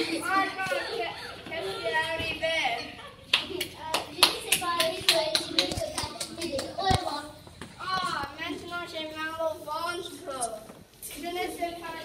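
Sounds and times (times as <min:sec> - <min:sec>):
children's voices: 0:00.0 - 0:12.0
children clapping: 0:03.3 - 0:07.0.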